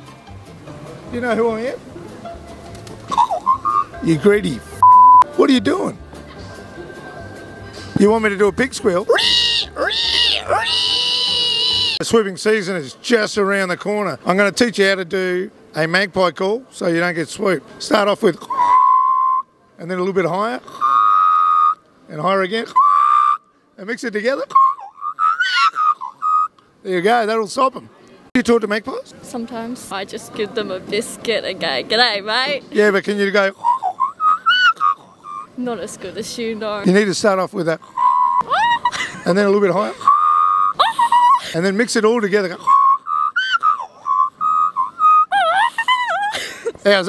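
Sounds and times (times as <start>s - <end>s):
man imitating bird call: 3.2s - 4.0s, 9.1s - 12.0s, 20.8s - 21.8s, 22.7s - 23.4s, 24.5s - 26.6s, 33.5s - 35.6s, 37.8s - 38.9s, 42.6s - 45.9s.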